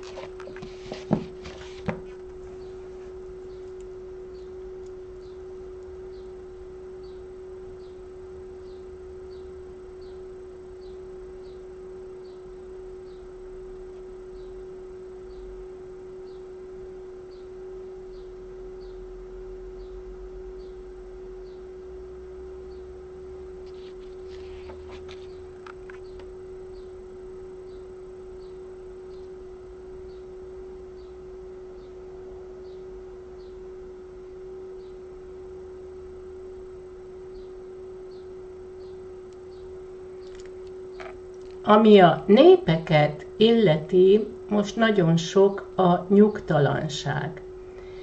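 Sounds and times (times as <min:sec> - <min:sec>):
steady pure tone: 0:00.0 - 0:48.0.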